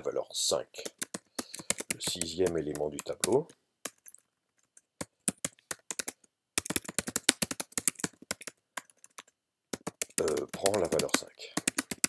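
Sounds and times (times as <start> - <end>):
typing on computer keyboard: 0.8 - 12.0.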